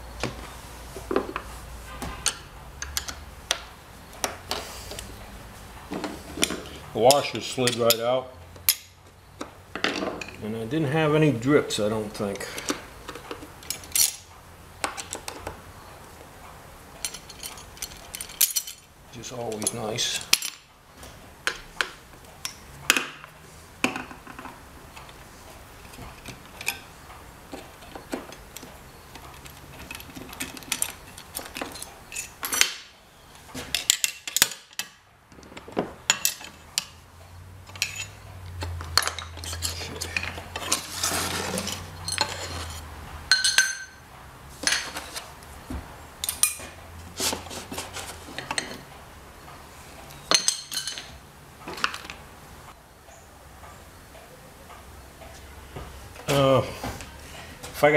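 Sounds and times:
metal parts clinking on metal and wood: 2.2s - 4.6s, 5.9s - 10.4s, 12.3s - 15.6s, 17.0s - 20.7s, 24.0s - 37.0s, 37.6s - 44.0s, 46.2s - 48.9s, 50.1s - 52.2s.

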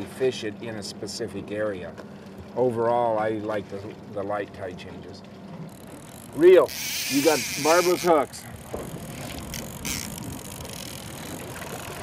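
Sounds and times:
outboard motor running: 0.0s - 12.0s
water noise: 0.0s - 12.0s
wind: 0.0s - 12.0s
fishing reel ticking: 5.7s - 12.0s.

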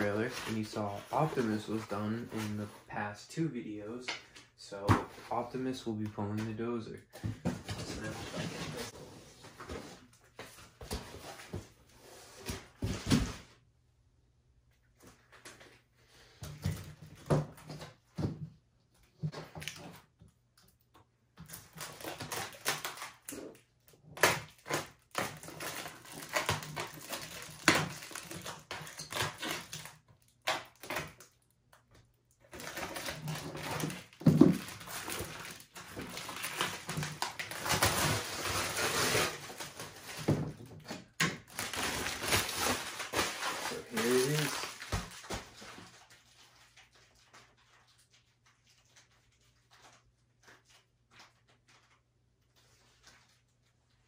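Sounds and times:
plastic wrap crinkling: 0.0s - 2.6s, 21.5s - 31.4s, 32.4s - 54.0s.

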